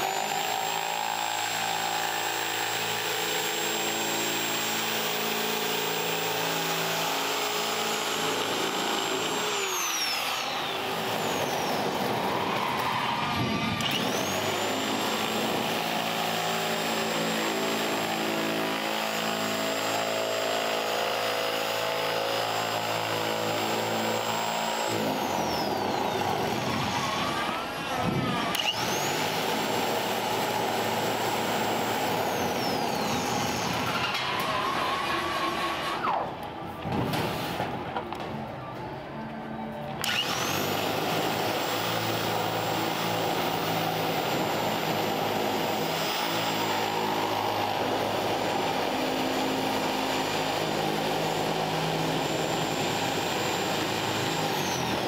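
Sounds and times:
electric metal shear whine: 0:00.0 - 0:36.4, 0:40.0 - 0:55.0.

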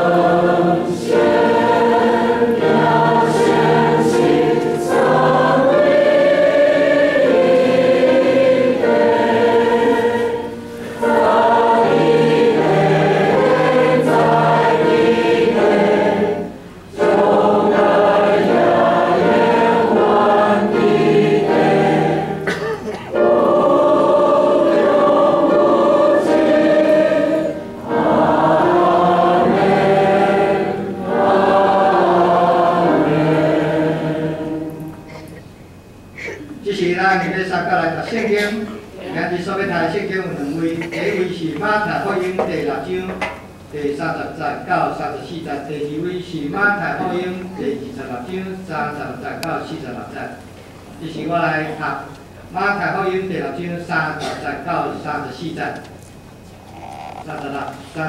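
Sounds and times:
church choir singing: 0:00.0 - 0:35.3.

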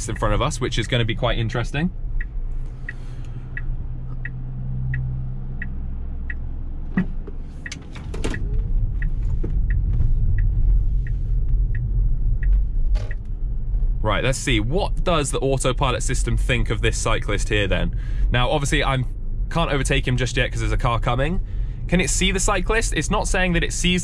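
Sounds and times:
low road rumble: 0:00.0 - 0:24.0
turn signal ticking: 0:00.0 - 0:24.0.

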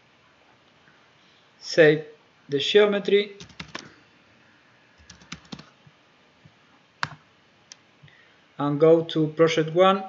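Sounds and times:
keyboard keys clicking: 0:03.4 - 0:03.9, 0:05.0 - 0:05.7.

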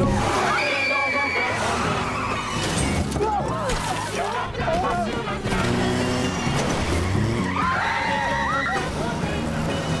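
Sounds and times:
car engine and tyre noise: 0:00.0 - 0:10.0
song with singing voice: 0:03.5 - 0:06.2.

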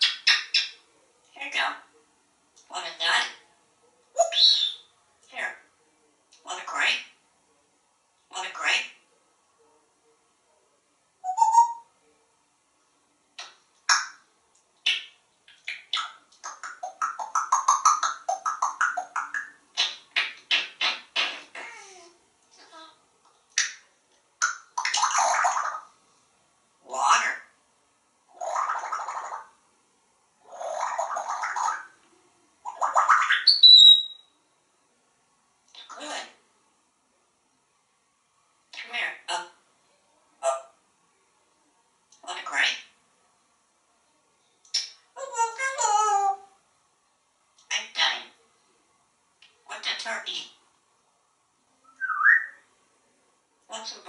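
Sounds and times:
parrot whistle: 0:11.2 - 0:11.9, 0:33.3 - 0:34.2, 0:51.8 - 0:52.6
parrot clacking: 0:14.8 - 0:21.9
parrot gurgling splashy sounds: 0:28.4 - 0:29.4
parrot rising whistle: 0:51.9 - 0:52.6.

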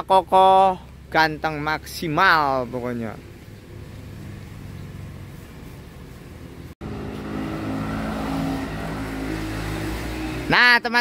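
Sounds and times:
vehicle engine running: 0:00.2 - 0:10.6.

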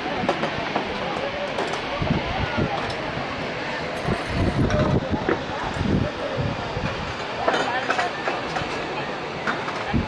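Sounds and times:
people's voices: 0:00.0 - 0:10.0
waterfall rushing: 0:00.0 - 0:10.0.

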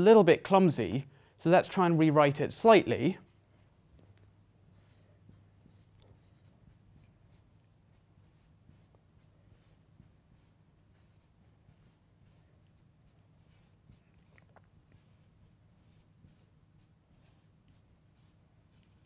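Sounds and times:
low room hum: 0:00.0 - 0:19.0
marker scratching on whiteboard: 0:04.7 - 0:19.0.

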